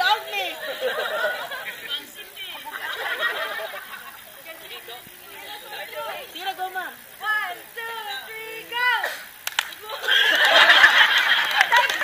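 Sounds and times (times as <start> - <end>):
sharp clicks: 9.3 - 9.8.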